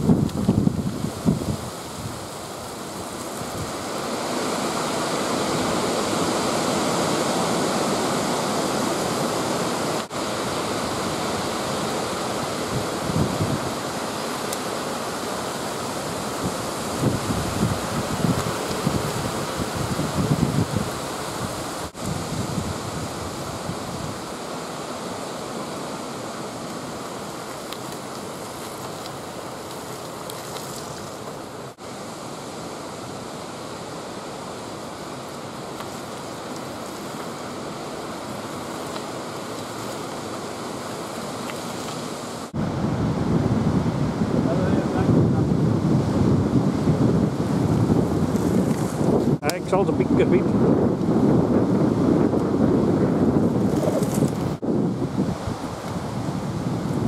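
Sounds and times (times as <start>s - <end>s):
wind buffeting microphone: 0.0s - 8.4s, 9.2s - 14.0s, 15.4s - 24.4s, 42.2s - 57.0s
rushing wind: 0.0s - 57.0s.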